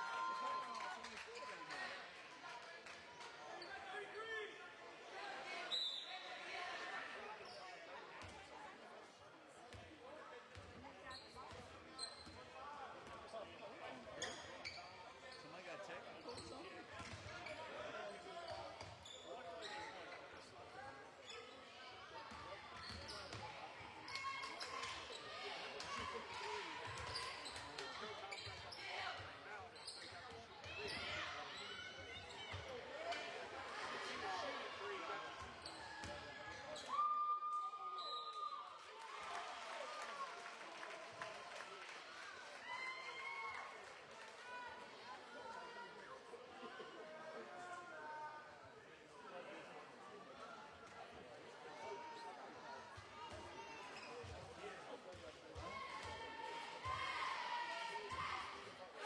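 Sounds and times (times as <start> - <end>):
spectator chatter: 0.0 - 59.0.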